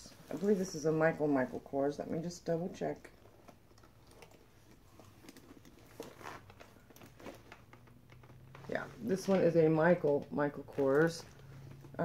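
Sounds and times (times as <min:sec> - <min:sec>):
soft rustle of handling: 0:00.0 - 0:12.0.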